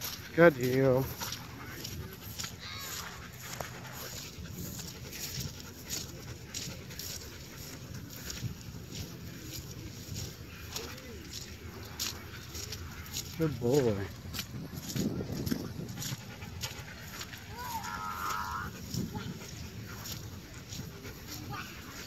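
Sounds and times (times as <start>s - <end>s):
low outdoor background: 0.0s - 22.0s.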